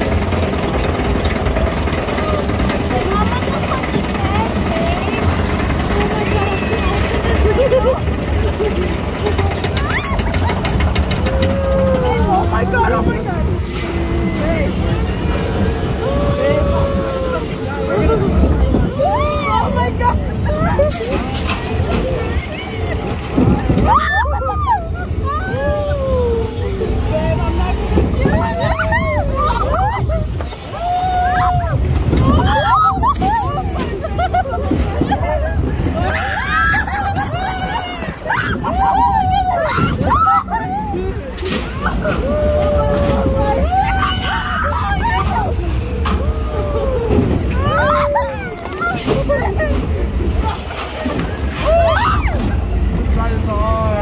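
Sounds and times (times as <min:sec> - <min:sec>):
low rumble of moving ride: 0:00.0 - 0:54.0
riders shrieking and laughing: 0:00.0 - 0:54.0.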